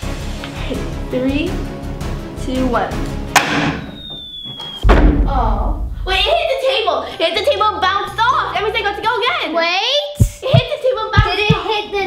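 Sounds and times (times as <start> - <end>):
heavy thump: 4.8 - 6.4, 10.2 - 11.6.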